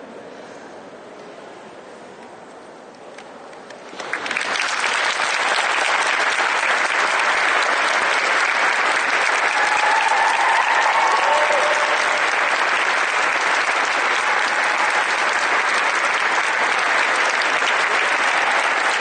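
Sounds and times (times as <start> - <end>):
audience applauding: 3.8 - 19.0.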